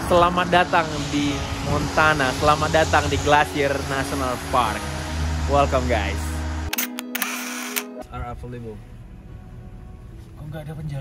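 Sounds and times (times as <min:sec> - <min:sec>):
camera shutter clicks: 0:06.7 - 0:08.0.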